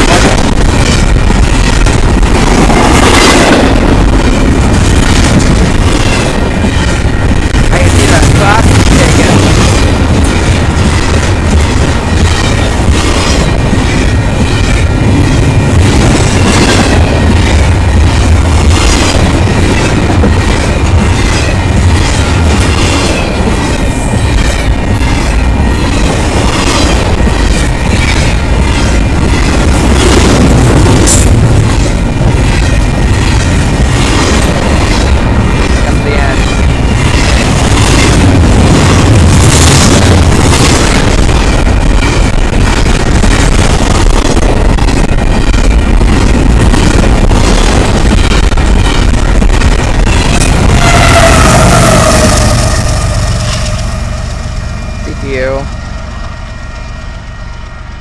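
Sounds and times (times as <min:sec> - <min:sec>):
clickety-clack over rail joints: 0:00.0 - 0:55.8
freight train wheels on rails: 0:00.0 - 0:58.0.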